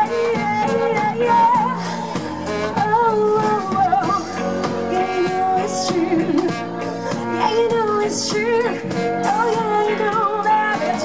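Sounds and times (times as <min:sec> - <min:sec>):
drum kit with cymbals: 0:00.0 - 0:11.0
electric guitar: 0:00.0 - 0:11.0
woman singing: 0:00.0 - 0:11.0.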